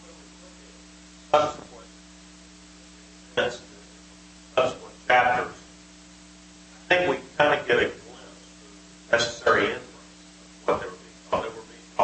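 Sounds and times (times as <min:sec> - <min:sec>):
low electrical hum: 0:00.0 - 0:12.0
person speaking off microphone: 0:01.3 - 0:01.9, 0:03.3 - 0:04.0, 0:04.6 - 0:05.7, 0:06.8 - 0:12.0.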